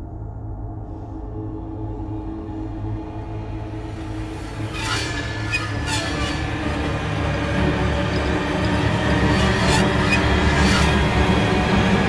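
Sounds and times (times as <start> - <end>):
high metallic screeches: 4.4 - 12.0.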